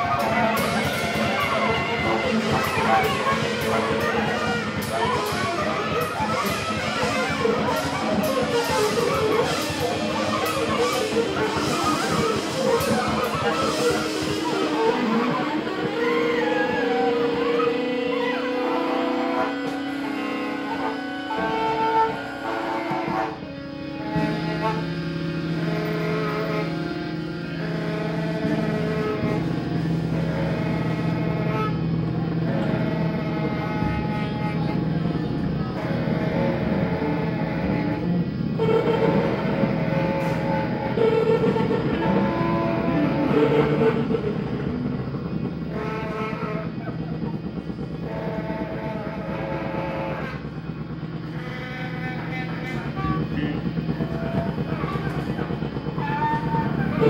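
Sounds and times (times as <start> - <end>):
noise rock guitars and drums: 0.0 - 57.0.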